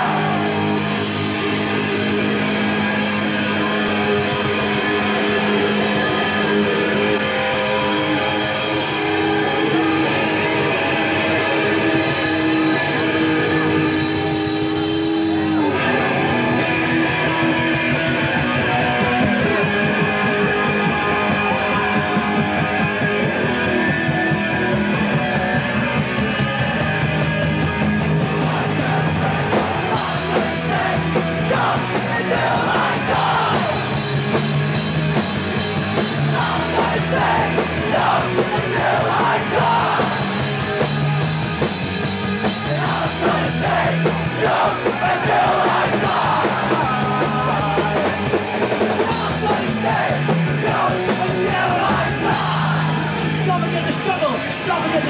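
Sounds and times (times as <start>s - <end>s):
punk band playing live: 0.0s - 55.0s.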